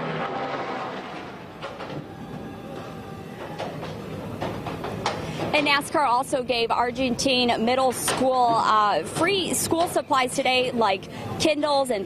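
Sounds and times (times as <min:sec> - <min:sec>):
race car engines rumbling: 0:00.0 - 0:11.6.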